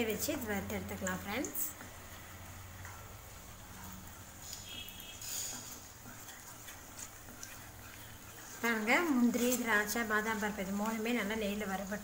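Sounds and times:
faint frying sizzle: 0:00.0 - 0:12.0
spatula scraping a pan: 0:04.5 - 0:09.9.

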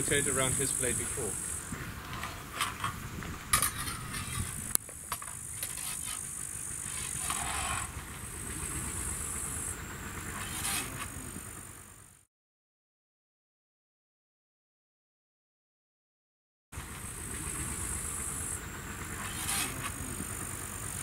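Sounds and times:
insects chirring: 0:00.0 - 0:12.0, 0:16.8 - 0:21.0
steel blades clicking and knocking: 0:02.0 - 0:06.3, 0:06.9 - 0:08.0.

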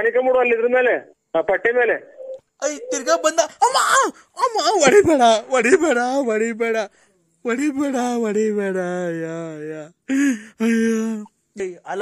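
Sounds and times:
speech over a telephone line: 0:00.0 - 0:03.6.

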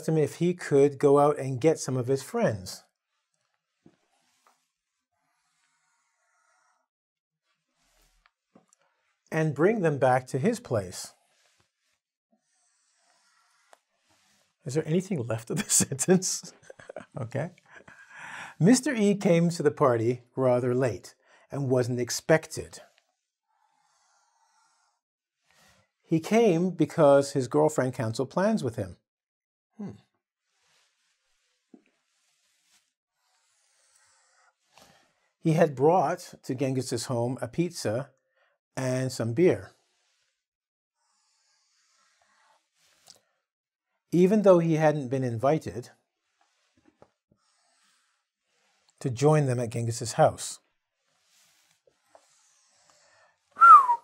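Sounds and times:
soft intake of breath: 0:46.3 - 0:49.0
man whistling falling note: 0:53.6 - 0:54.0.

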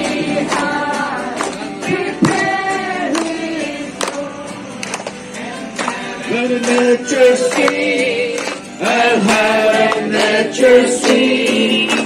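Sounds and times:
sharp irregular beats: 0:00.0 - 0:03.4
group singing a christmas song: 0:00.0 - 0:12.0.

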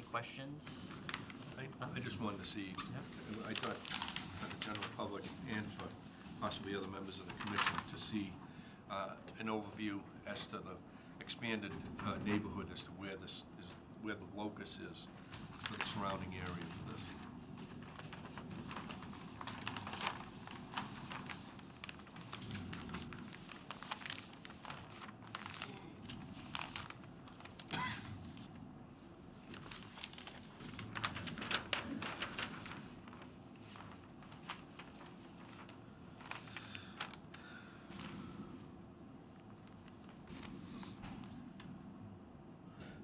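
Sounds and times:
low room hum: 0:00.0 - 0:43.0
paper rustling and crinkling: 0:00.6 - 0:08.4, 0:15.2 - 0:28.5, 0:29.4 - 0:38.6, 0:39.2 - 0:41.4.

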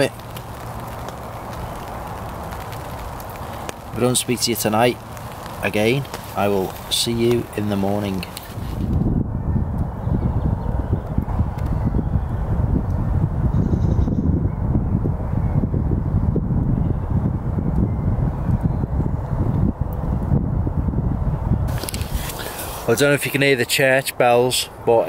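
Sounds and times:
wind buffeting microphone: 0:00.0 - 0:23.5.

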